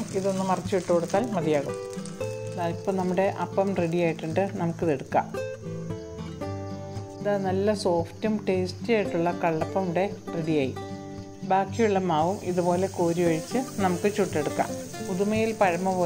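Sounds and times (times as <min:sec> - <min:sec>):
faint sizzle on hot griddle: 0:00.0 - 0:04.8, 0:12.1 - 0:16.0
background music with melodic lead: 0:00.0 - 0:16.0.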